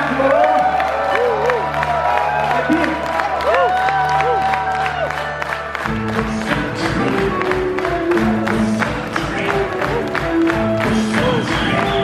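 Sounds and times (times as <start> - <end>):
audience clapping along: 0.0 - 12.0
live rock band playing: 5.4 - 12.0.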